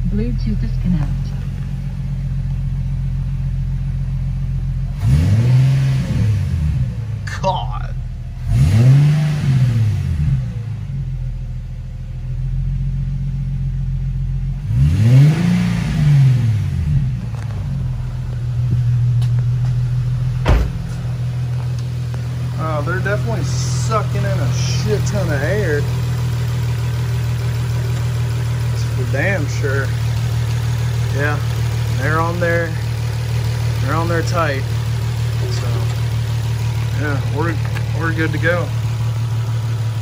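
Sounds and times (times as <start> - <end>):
car engine idling and revving: 0.0 - 40.0.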